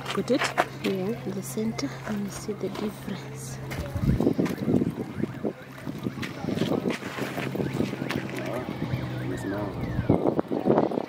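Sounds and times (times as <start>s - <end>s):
indistinct voices talking: 0.0s - 11.0s
wind on microphone: 3.6s - 11.0s.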